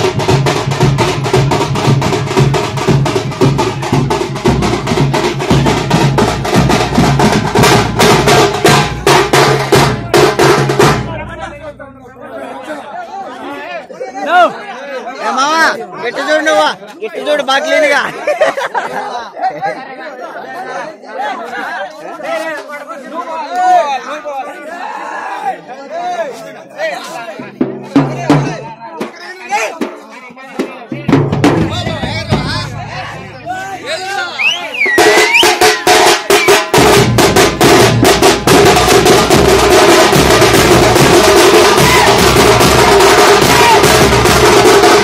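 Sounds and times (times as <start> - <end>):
drums beating fast rhythm: 0.0 - 12.3, 27.4 - 45.0
men's voices in a crowd: 7.8 - 36.6
crowd shouting and whooping: 32.9 - 36.4, 41.7 - 44.0.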